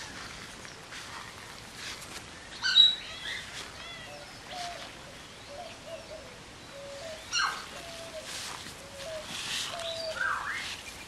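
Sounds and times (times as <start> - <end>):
sharp high-pitched bird calls: 2.5 - 4.9, 6.8 - 11.0.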